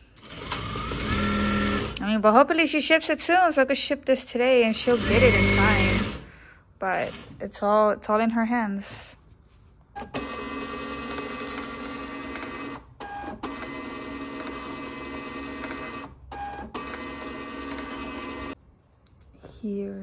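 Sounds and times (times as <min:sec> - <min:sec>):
label printer mechanical whine: 0:10.0 - 0:18.6.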